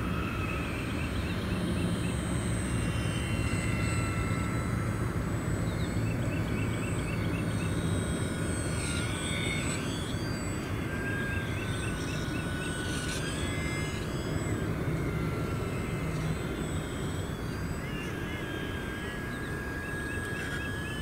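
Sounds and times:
model plane motor whining: 0:00.0 - 0:21.0.

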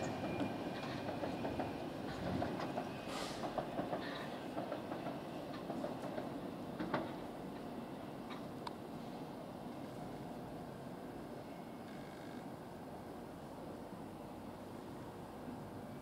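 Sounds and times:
electric train running on track: 0:00.0 - 0:16.0.

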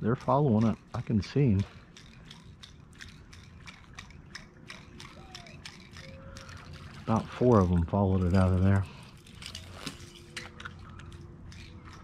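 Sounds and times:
fishing reel gears ticking: 0:00.0 - 0:12.0.

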